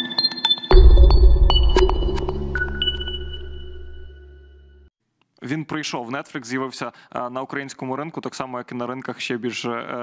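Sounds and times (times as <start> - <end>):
deep held bass note: 0.7 - 4.2
high electronic pinging tones: 0.7 - 4.7.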